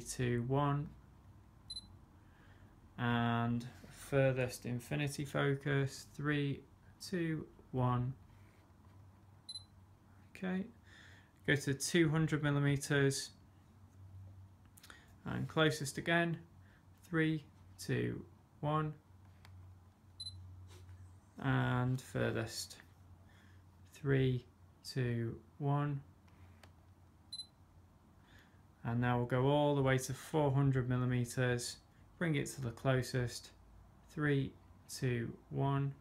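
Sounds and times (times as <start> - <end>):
faint low hum: 0.0 - 36.0.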